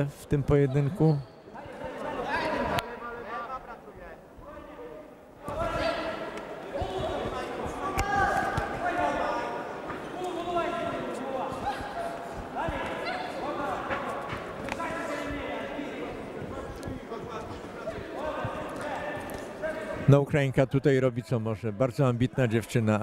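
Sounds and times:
voices shouting in a hall: 0.0s - 3.9s, 4.6s - 20.1s
footwork on ring canvas: 5.4s - 20.2s.

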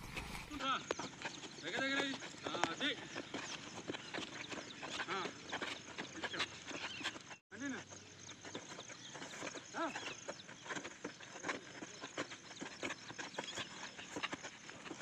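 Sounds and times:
open-air background noise: 0.0s - 15.0s.

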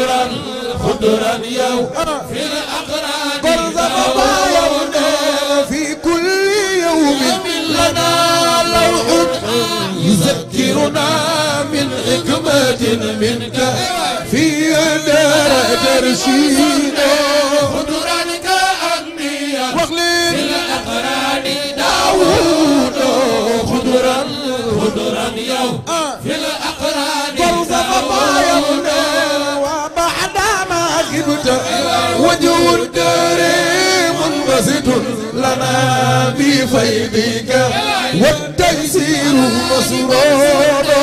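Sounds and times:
men chanting into microphones: 0.0s - 41.0s.

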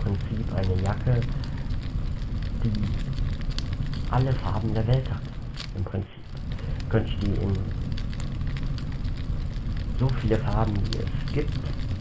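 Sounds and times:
crackling flames: 0.0s - 12.0s.

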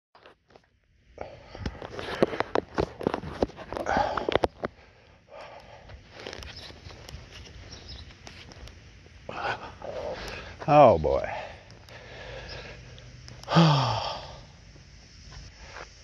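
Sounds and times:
steady rustle: 1.4s - 13.5s, 14.3s - 16.0s.

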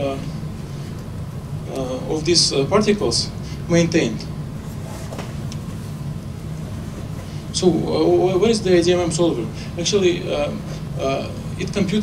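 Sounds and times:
room hum of ventilation: 0.0s - 12.0s.

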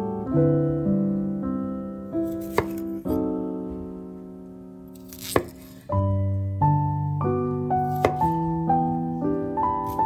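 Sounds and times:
soft piano music: 0.0s - 10.0s
knife slicing broccoli stem: 2.3s - 3.2s, 5.0s - 5.9s, 7.9s - 8.4s
knife knocking on wooden board: 2.4s - 2.8s, 5.2s - 5.7s.

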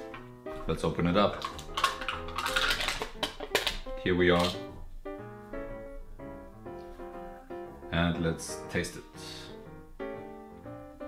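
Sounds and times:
instrumental background music: 0.0s - 11.0s
foil lid peeled off cup: 1.4s - 3.8s.

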